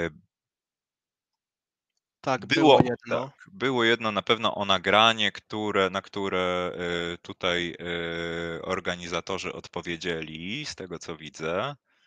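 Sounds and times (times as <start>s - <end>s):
spoken word: 2.3s - 11.7s.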